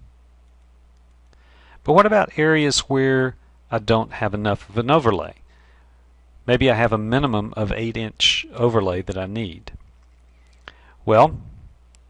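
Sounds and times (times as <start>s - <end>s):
low steady hum: 0.0s - 12.0s
computer mouse click: 0.4s - 1.4s
man speaking: 6.5s - 9.8s.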